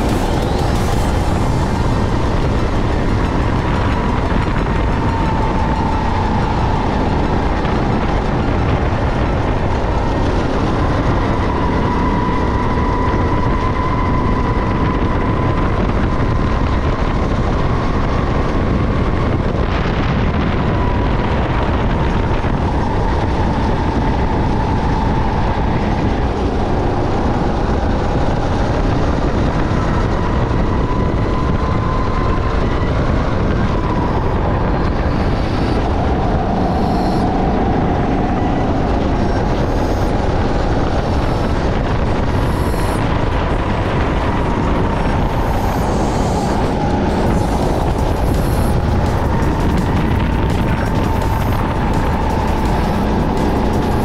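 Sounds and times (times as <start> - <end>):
go-kart engine running hard: 0.0 - 54.0
wind and road noise: 0.0 - 54.0.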